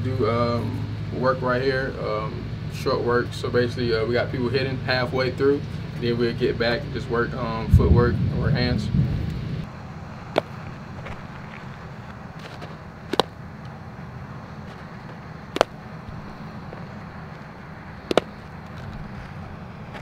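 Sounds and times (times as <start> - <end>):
low background rumble: 0.0 - 20.0
baseball popping into glove: 10.3 - 13.4, 14.7 - 17.4, 18.1 - 19.0.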